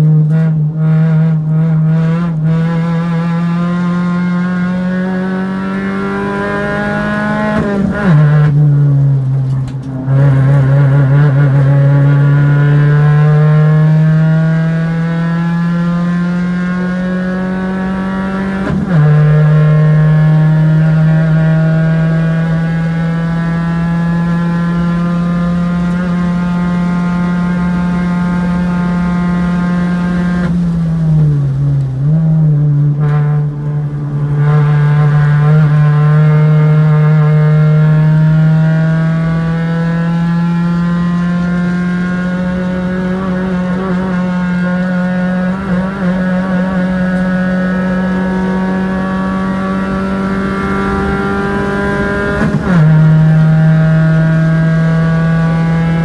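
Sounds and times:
race car engine at high revs: 0.0s - 56.0s.

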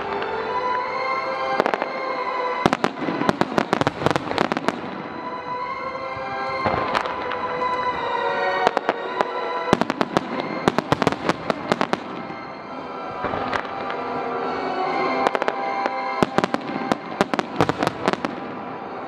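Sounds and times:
music with sustained tones: 0.0s - 19.0s
firework shells crackling: 6.6s - 12.6s, 13.2s - 19.0s.

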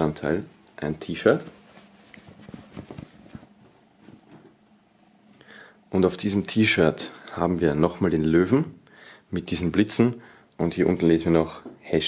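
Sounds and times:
t-shirt rustling: 1.0s - 4.6s.

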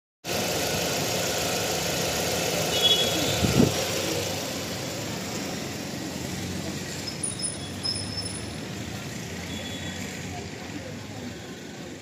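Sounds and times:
car engine idling: 0.2s - 12.0s.

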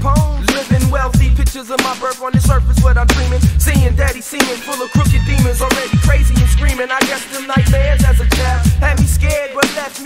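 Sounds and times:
sliding deep bass line: 0.0s - 1.5s, 2.4s - 9.4s
rapping over drums: 0.0s - 10.0s.

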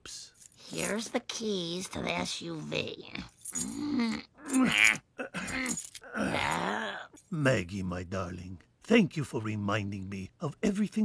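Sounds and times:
cartoon character wordless vocal sounds: 2.0s - 7.2s.

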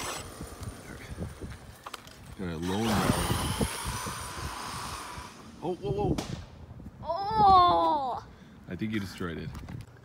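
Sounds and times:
electric motor whine: 0.0s - 5.7s.

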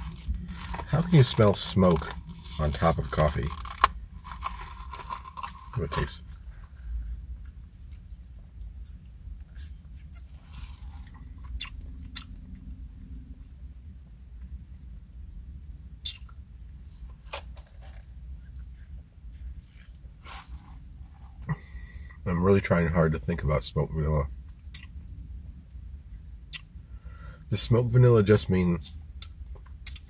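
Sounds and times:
car cabin hum: 0.0s - 8.8s
lip smacks and clicks: 11.4s - 12.4s, 16.0s - 16.4s, 26.5s - 26.7s, 29.2s - 30.0s.

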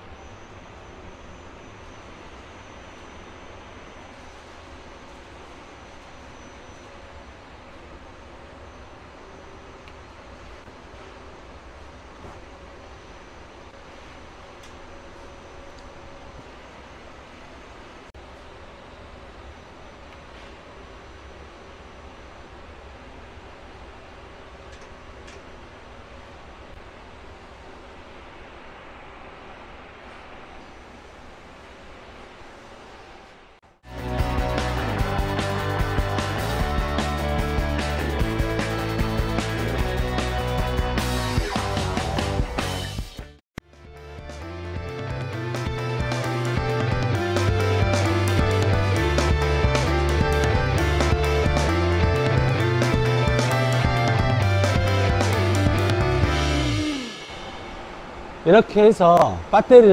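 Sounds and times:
machinery rumble and hum: 0.0s - 59.9s.

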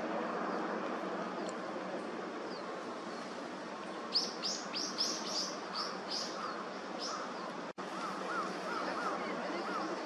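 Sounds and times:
steady background hiss: 0.0s - 10.0s.

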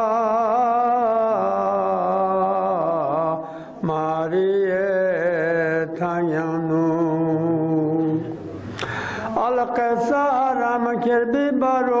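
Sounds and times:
man chanting a lament: 0.0s - 8.5s, 9.2s - 12.0s.

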